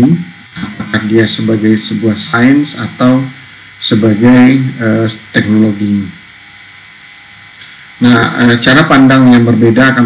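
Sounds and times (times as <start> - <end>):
background hiss: 0.0 - 10.0
faint steady tones: 0.0 - 10.0.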